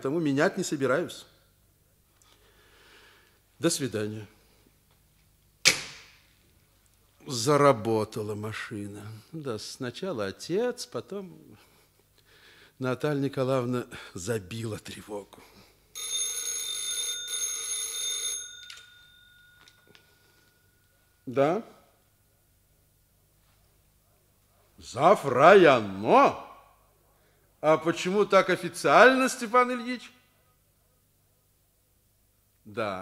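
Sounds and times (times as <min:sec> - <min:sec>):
telephone bell ringing: 0:16.0 - 0:20.8.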